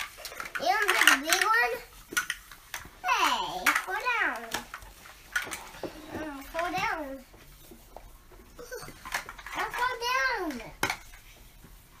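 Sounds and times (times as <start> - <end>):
plastic toy blocks clacking: 0.0 - 2.9, 3.5 - 5.6.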